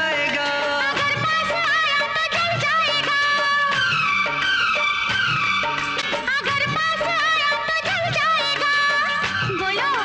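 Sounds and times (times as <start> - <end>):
film song instrumental music: 0.0 - 10.0.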